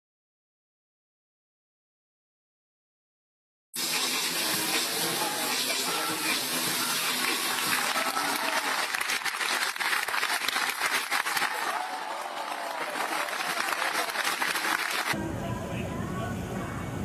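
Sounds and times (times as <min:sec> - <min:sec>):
water splashing: 0:03.8 - 0:11.6
scattered voices: 0:04.1 - 0:08.9
crowd applauding: 0:05.5 - 0:15.2.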